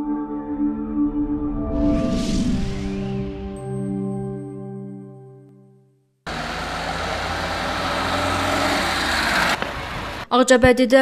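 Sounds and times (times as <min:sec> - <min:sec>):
music ident: 0:00.2 - 0:05.4
cars driving along a road: 0:06.3 - 0:10.3.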